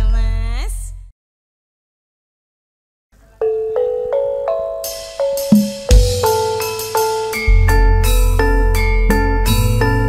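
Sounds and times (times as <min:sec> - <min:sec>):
tuned percussion notes ringing: 0:03.4 - 0:09.8.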